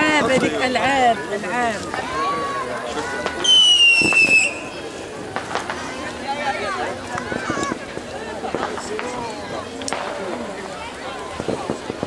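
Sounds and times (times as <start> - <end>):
whistling firework: 3.2 - 6.0
firecracker bangs: 3.2 - 6.1, 11.3 - 12.0.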